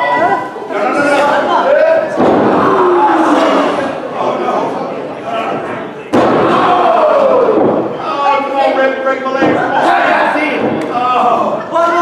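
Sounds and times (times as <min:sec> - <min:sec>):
loud slam on wrestling ring: 0:02.1 - 0:03.8, 0:06.1 - 0:08.0.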